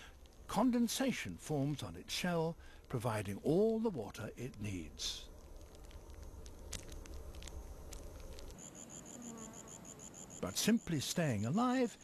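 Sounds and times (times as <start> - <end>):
insect chirping: 0.0 - 12.0.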